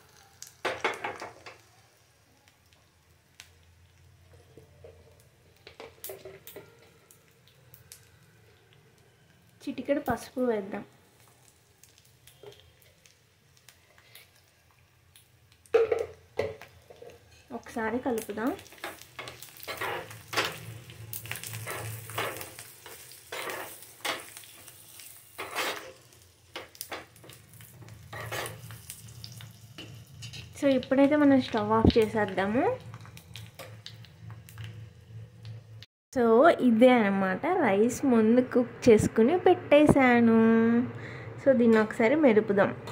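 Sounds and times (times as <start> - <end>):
crackle of frying in oil: 0.0 - 35.9
steady low hum: 37.0 - 42.9.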